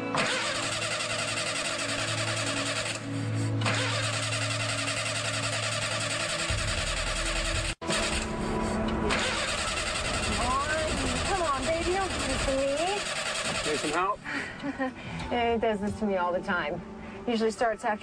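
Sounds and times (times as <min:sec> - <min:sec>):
music: 0:00.0 - 0:13.0, 0:13.8 - 0:18.0
car starter cranking: 0:00.1 - 0:14.1.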